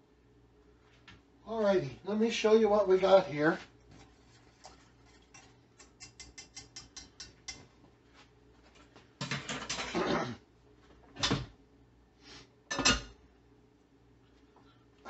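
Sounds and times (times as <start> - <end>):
kitchenware clattering: 9.2 - 10.1, 12.7 - 13.2.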